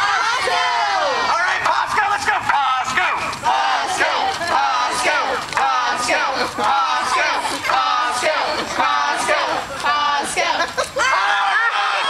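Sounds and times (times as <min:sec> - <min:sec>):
children shouting and chanting: 0:00.0 - 0:12.0.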